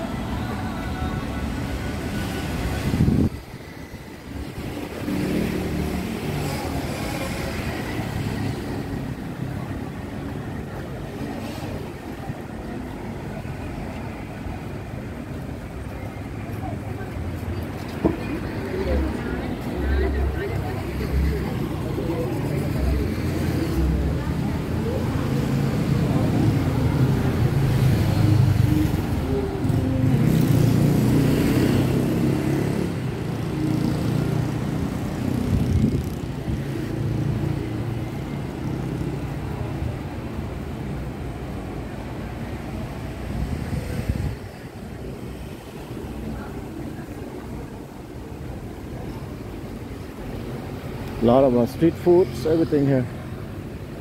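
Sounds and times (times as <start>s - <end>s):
car engines passing: 0.0s - 54.0s.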